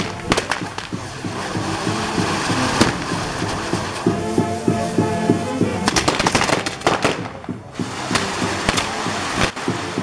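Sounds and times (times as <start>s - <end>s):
firework crack: 0.0s - 10.0s
fireworks fountain hissing: 0.0s - 10.0s.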